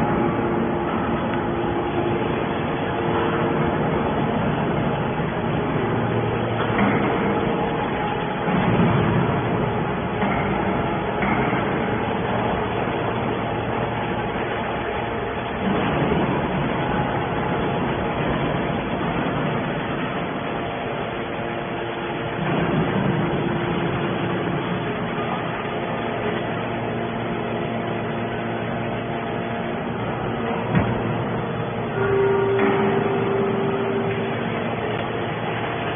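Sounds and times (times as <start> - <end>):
hydraulic baler humming: 0.0 - 35.9.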